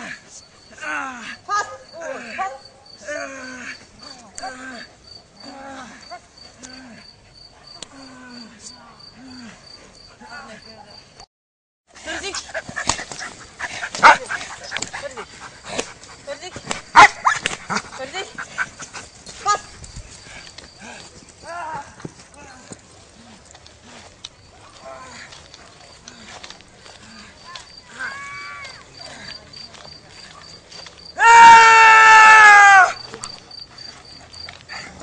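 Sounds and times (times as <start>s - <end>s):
dog barking: 13.7s - 14.9s, 16.9s - 17.4s.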